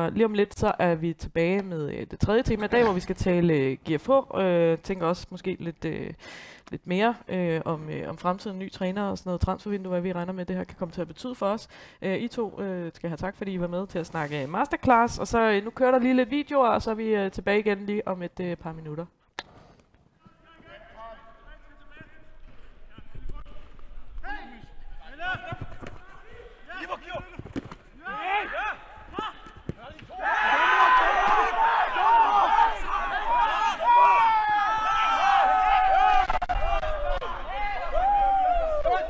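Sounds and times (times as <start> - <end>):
players calling: 20.2 - 39.0
ball kicks: 26.9 - 27.9, 29.0 - 30.2
crowd shouting and cheering: 28.0 - 39.0.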